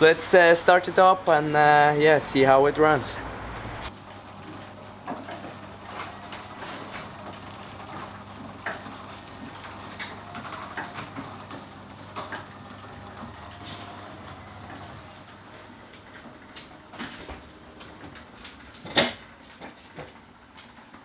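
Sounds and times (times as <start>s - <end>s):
garage door motor hum: 0.0s - 21.0s.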